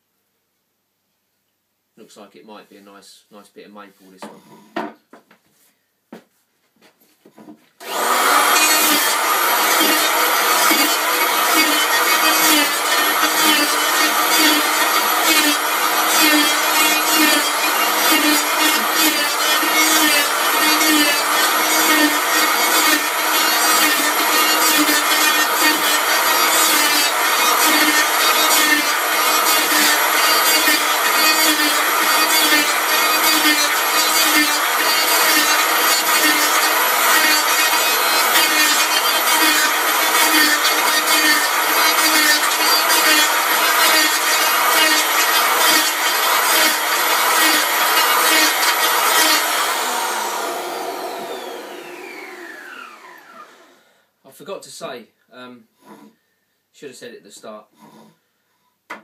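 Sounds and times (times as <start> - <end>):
planer motor winding down: 7.8 - 26.5, 44.5 - 53.9
electric planer cutting wood: 7.8 - 53.9.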